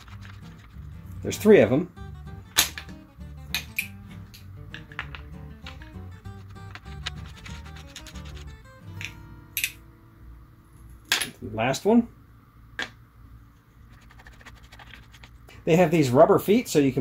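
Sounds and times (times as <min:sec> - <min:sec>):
background music with low beat: 0:00.1 - 0:09.8.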